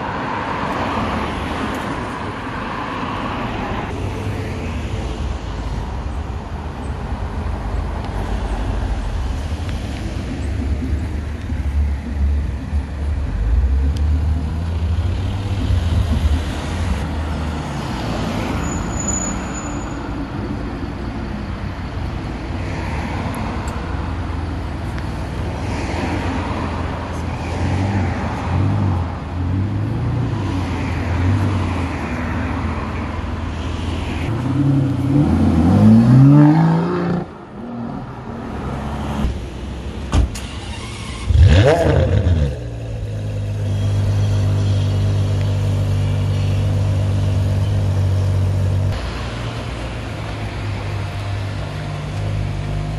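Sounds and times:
sports car engines passing: 0.0s - 18.8s, 20.2s - 52.9s
loud engine rev: 41.2s - 45.2s.

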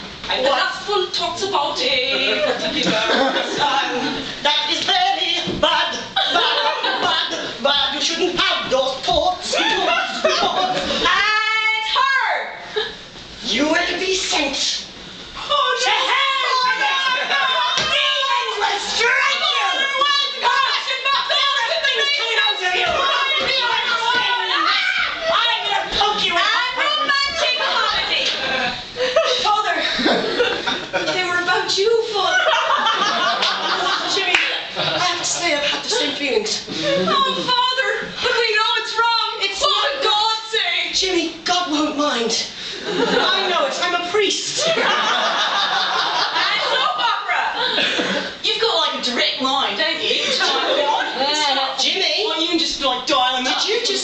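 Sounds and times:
voices: 0.0s - 54.0s
audience clapping: 33.4s - 33.6s, 34.3s - 34.6s.

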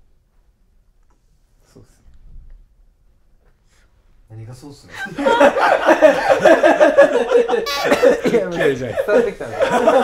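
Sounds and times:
men laughing: 4.9s - 10.0s.

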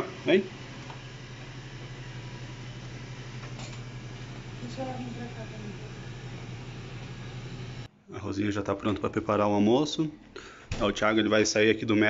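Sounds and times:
robot vacuum cleaner running: 0.0s - 7.9s.

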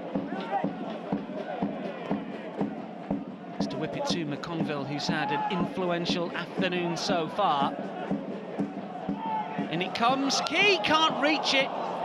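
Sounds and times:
drum beating steadily: 0.0s - 11.2s
crowd singing and chanting: 6.8s - 10.8s.

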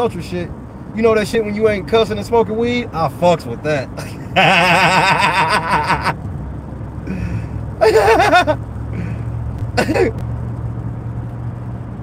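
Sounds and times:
car engine and road noise: 0.0s - 12.0s
man laughing: 4.0s - 6.2s, 7.1s - 8.6s, 9.7s - 10.2s.

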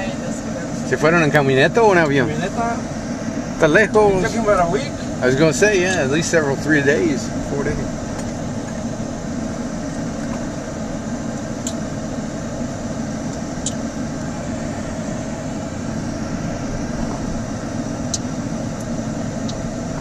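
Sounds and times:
car engine and tyre noise: 0.0s - 20.0s.

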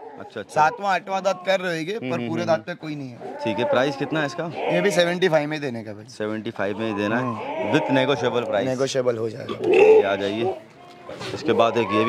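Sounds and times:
goat bleating low: 3.2s - 5.1s, 6.9s - 8.6s.

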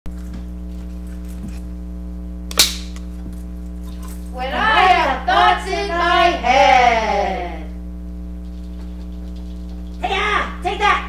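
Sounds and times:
low electrical hum: 0.1s - 11.0s
film slate clap: 2.5s - 3.0s.

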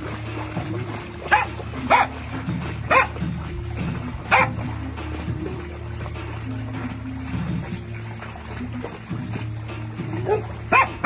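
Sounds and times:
background music: 0.0s - 11.0s
dog barking: 1.3s - 2.2s, 2.9s - 3.2s, 4.3s - 4.6s, 10.2s - 11.0s.

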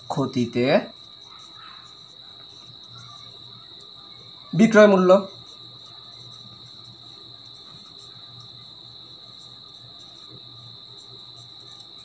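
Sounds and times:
crickets trilling: 0.0s - 12.0s
marker pen scratching on paper: 0.0s - 12.0s.

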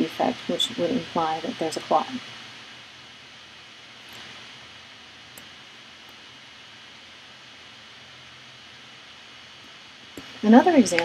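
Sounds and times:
faint high whine: 0.0s - 11.0s
room tone hiss: 0.0s - 11.0s.

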